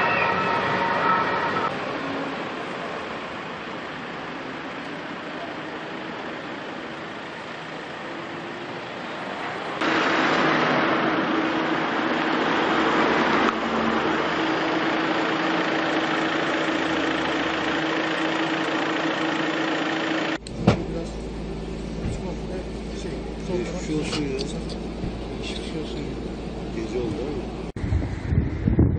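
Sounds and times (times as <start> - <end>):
vehicle engine running: 0.0 - 28.7
constant hum: 0.0 - 28.9.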